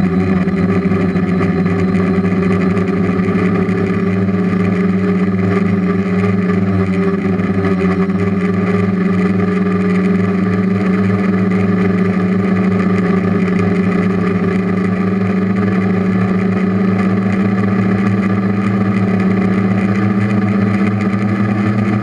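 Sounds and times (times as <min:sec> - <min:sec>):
drone motors droning: 0:00.0 - 0:22.0.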